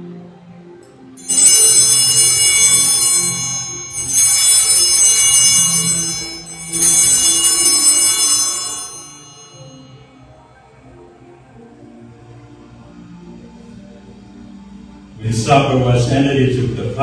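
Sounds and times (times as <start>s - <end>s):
altar bells jingling: 1.2s - 10.0s.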